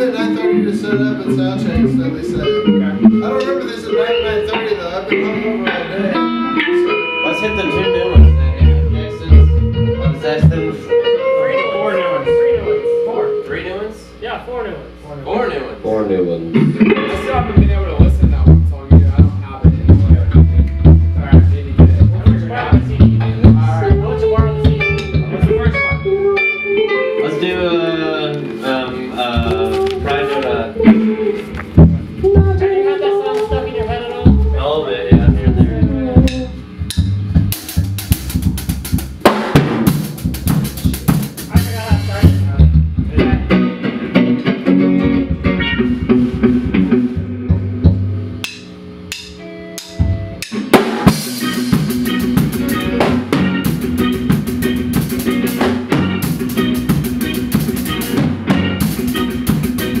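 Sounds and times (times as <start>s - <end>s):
drum kit: 0.0s - 13.1s, 16.5s - 27.2s, 28.6s - 60.0s
bass guitar: 0.0s - 14.2s, 15.8s - 60.0s
loose sliding notes: 0.0s - 14.2s, 15.7s - 60.0s
guitar: 0.0s - 60.0s.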